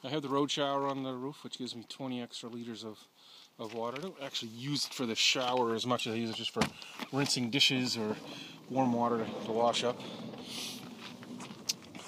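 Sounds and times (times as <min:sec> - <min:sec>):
short hiss: 0:10.4 - 0:10.8.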